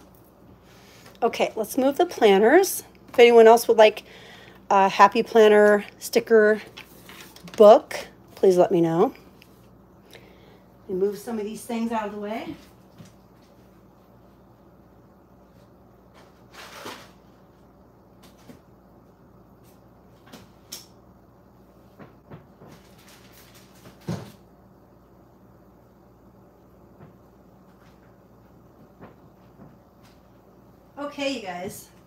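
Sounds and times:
faint low hum: 0.0 - 32.0.

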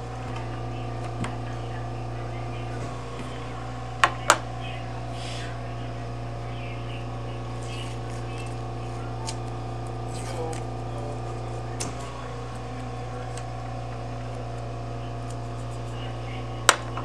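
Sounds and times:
faint indistinct voices: 0.0 - 17.0
low electrical hum: 0.0 - 17.0.

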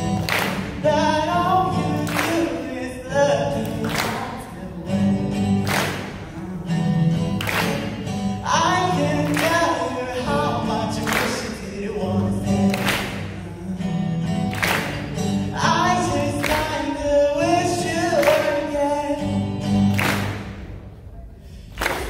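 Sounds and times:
strummed acoustic guitar: 0.0 - 21.0
person singing: 0.3 - 14.5, 15.4 - 19.6.

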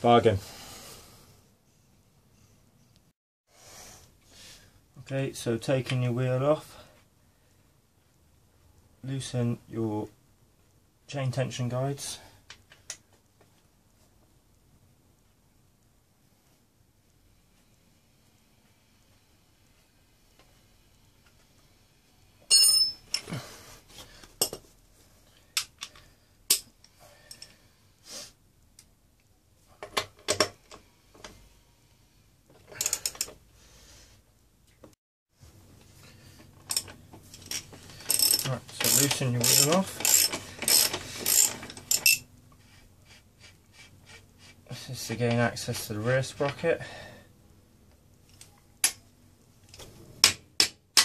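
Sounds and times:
metal tools clinking: 22.5 - 23.3, 36.6 - 42.2
socket ratchet clicking: 36.7 - 42.2.

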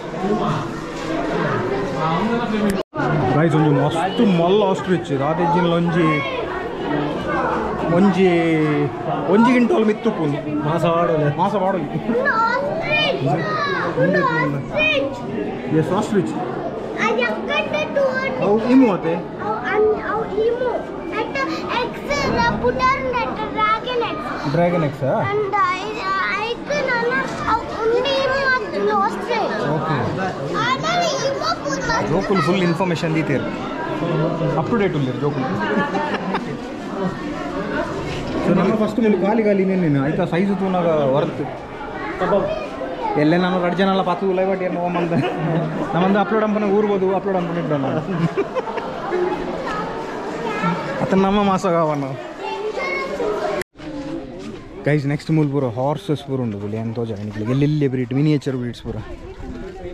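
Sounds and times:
children talking and calling out: 0.0 - 59.9
crowd chatter: 0.0 - 59.9.

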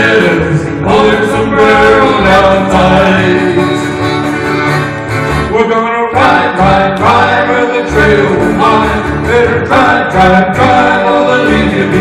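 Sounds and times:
accordion: 0.0 - 12.0
acoustic guitar: 0.0 - 12.0
upright bass: 0.0 - 12.0.

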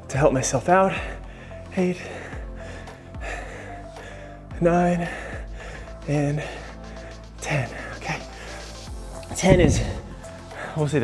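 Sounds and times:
background music with bass: 0.0 - 11.0
man breathing heavily: 0.8 - 10.9.

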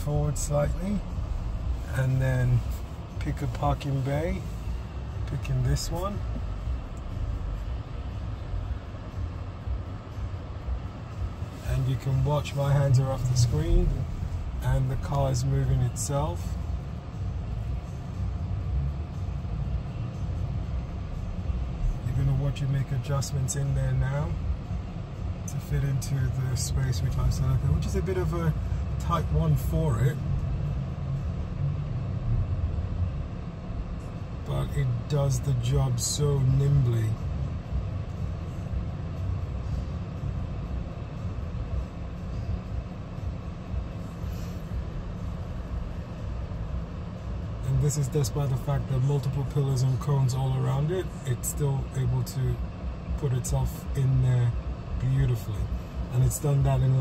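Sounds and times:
low rumble in car cabin: 0.0 - 57.0.

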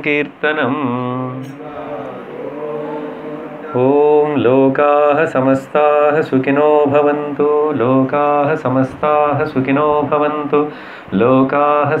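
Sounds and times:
man chanting into a microphone: 3.7 - 12.0.

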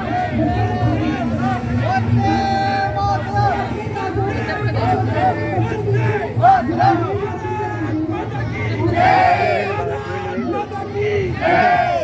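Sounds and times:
crowd chatter: 0.0 - 12.0
people shouting together: 4.3 - 7.9, 8.9 - 12.0.

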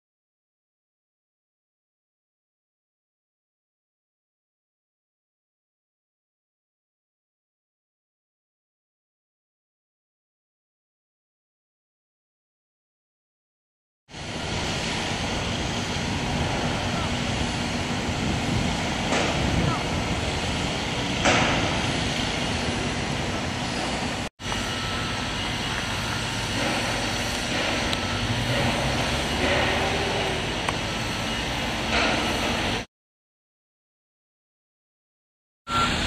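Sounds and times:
machinery din: 14.2 - 32.9
distant voices: 14.4 - 32.8
metal clanks: 26.5 - 30.4.

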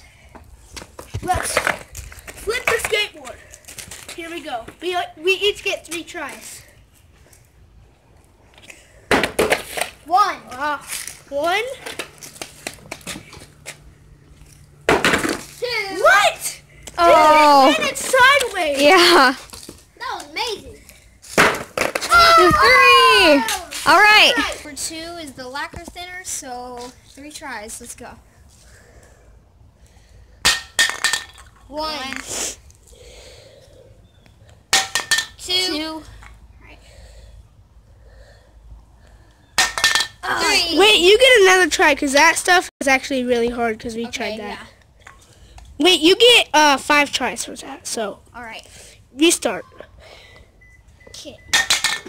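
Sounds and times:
skateboard clattering on concrete: 0.8 - 4.3, 9.1 - 10.0, 14.9 - 15.6, 21.4 - 22.1, 30.4 - 31.5, 34.7 - 35.4.

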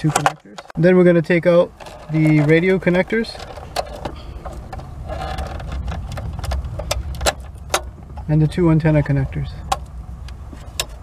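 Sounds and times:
steady low rumble: 0.2 - 11.0.

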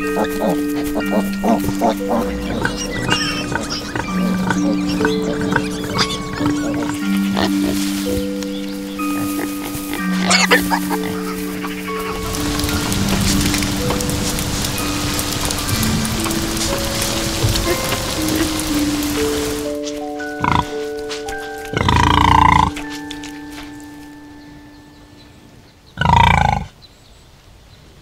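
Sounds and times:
pig calling: 0.0 - 13.9, 20.3 - 23.0, 26.0 - 26.7
rain hissing: 0.0 - 24.7
slow music of held notes: 0.0 - 26.2.

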